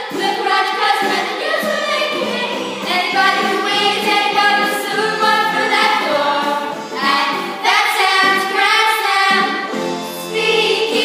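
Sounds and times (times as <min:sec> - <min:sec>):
children singing: 0:00.0 - 0:11.0.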